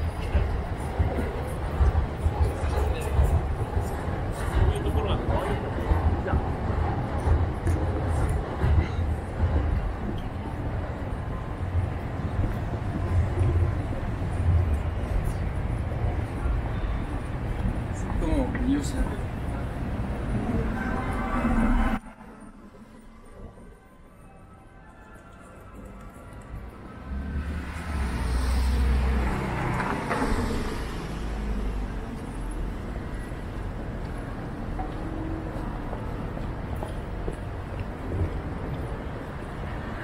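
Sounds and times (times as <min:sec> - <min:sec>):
indistinct voices of passers-by: 0:00.0 - 0:40.0
traffic: 0:00.0 - 0:40.0.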